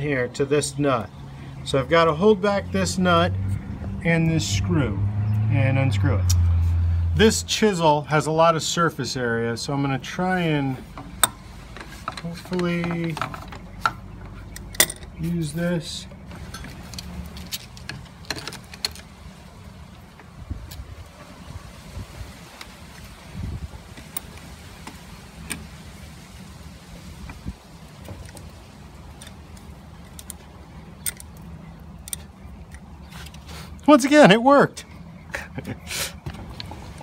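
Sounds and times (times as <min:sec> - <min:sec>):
metal tools clinking: 0:11.0 - 0:19.1.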